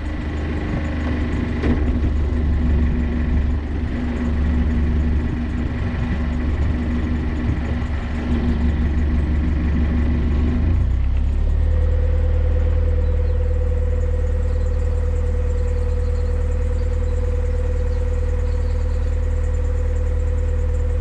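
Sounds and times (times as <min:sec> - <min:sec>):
diesel engine low hum: 0:00.0 - 0:21.0
faint steady whine: 0:00.0 - 0:21.0.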